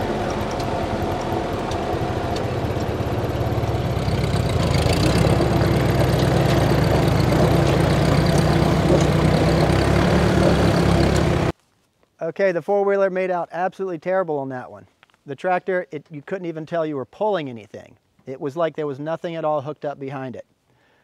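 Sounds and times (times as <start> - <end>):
four-wheeler engine running: 0.0 - 11.5
tractor engine under load: 0.0 - 11.5.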